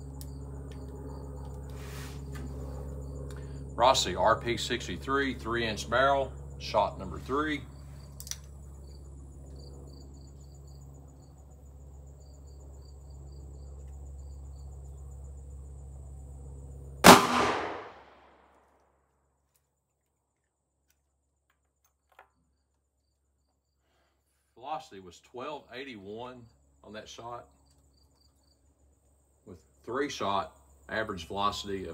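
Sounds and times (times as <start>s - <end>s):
low steady hum: 0.0s - 18.6s
revolver gunshot: 17.0s - 18.4s.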